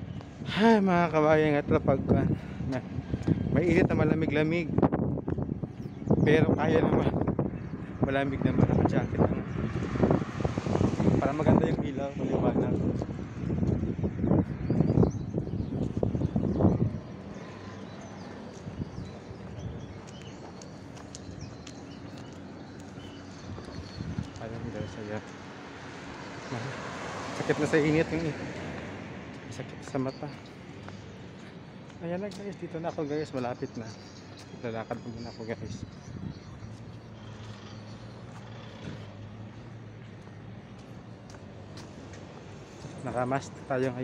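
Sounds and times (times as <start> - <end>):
steady low street rumble: 0.0 - 44.0.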